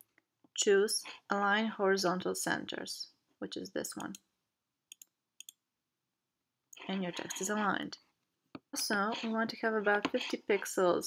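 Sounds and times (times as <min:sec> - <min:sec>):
computer mouse clicks: 0:04.9 - 0:05.6.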